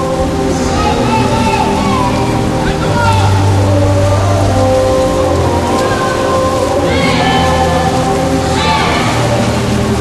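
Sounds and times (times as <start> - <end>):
crowd noise: 0.0 - 10.0
sustained music tones: 0.0 - 10.0
swimmers splashing: 0.0 - 10.0.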